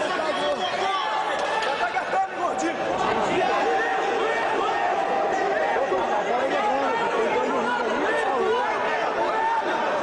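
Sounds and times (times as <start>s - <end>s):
crowd talking and calling out: 0.0s - 10.0s.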